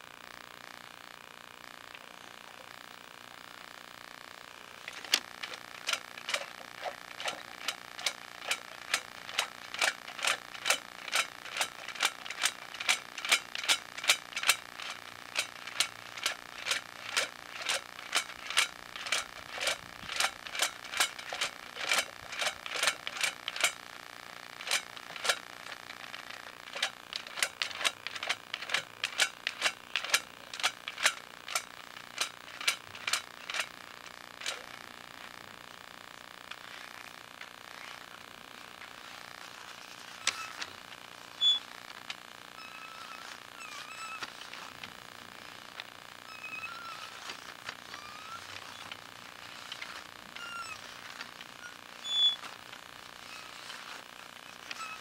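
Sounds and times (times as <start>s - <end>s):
camera cable scraping clicks: 4.9s - 23.8s, 24.6s - 34.6s.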